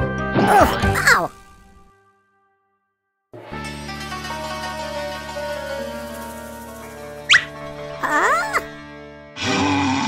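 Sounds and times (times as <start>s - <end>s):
cartoon music with sustained notes: 3.4s - 10.0s
falling whistle sound effect: 7.3s - 7.5s
squeaky wavering sound: 7.3s - 8.6s.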